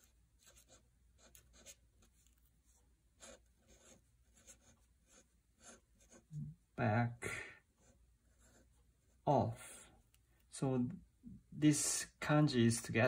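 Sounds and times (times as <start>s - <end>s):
pen scratching on paper: 0.0s - 6.4s, 7.8s - 9.2s.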